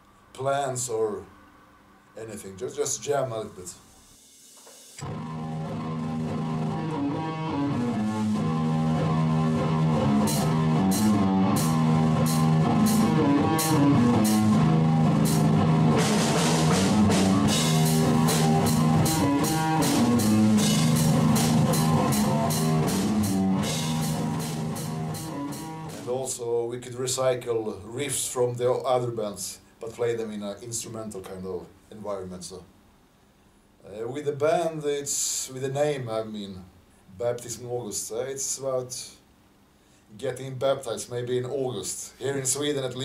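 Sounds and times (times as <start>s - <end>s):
drum kit: 3.1s - 26.4s
cymbal strokes: 3.8s - 5.1s
repeating guitar riff: 5.0s - 26.1s.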